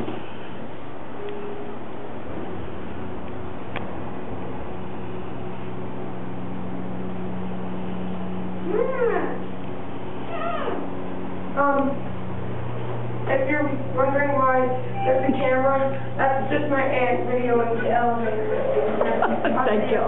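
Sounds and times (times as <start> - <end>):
elevator car humming: 0.0 - 20.0.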